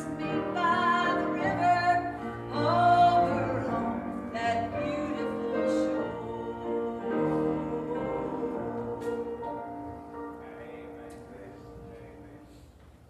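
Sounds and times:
piano accompaniment: 0.0s - 13.0s.

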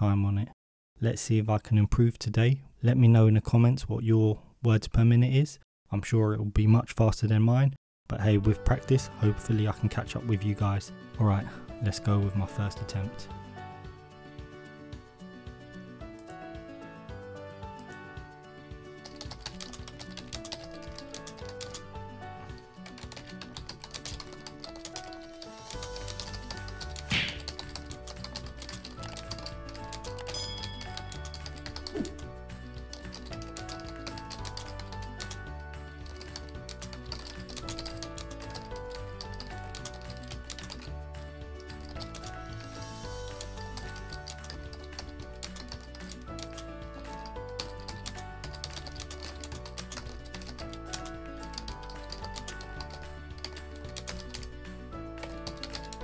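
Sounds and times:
background music: 8.1s - 56.0s
fast typing on keyboard: 19.0s - 41.0s, 41.6s - 56.0s.

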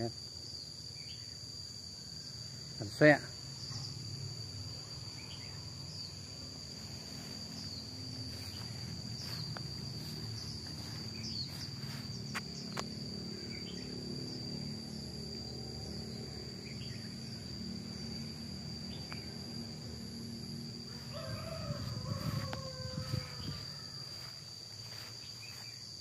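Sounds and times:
insect high-pitched trill: 0.0s - 26.0s.

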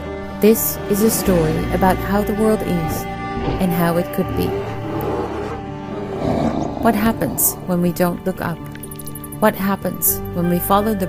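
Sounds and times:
background music: 0.0s - 11.0s
cartoon bear growl: 4.4s - 7.8s.

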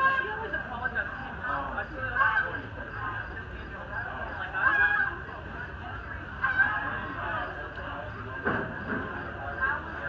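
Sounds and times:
goose honking: 4.5s - 5.2s, 6.4s - 7.3s.

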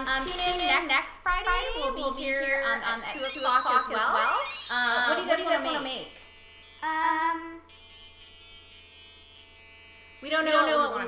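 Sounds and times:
thin high tones: 0.0s - 1.0s, 1.9s - 7.7s
electrical hum and buzz: 0.0s - 11.0s.

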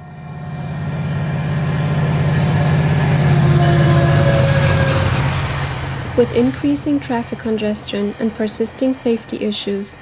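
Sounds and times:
train passing rumble: 0.0s - 10.0s.

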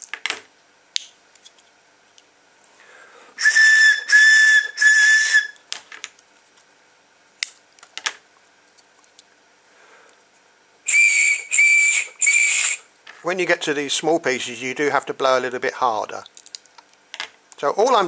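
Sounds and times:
breathy straw whistling notes: 3.4s - 5.6s, 10.9s - 12.9s.

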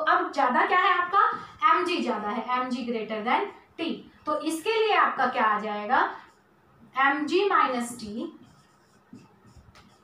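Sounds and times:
woman speaking: 0.0s - 6.3s, 6.9s - 8.5s
marker scratching on whiteboard: 7.9s - 10.0s.

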